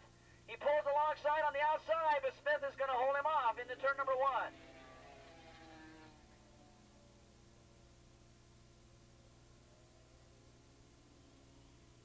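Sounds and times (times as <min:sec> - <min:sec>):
steady low hum: 0:00.0 - 0:12.0
distant motorcycle engines: 0:03.0 - 0:08.2.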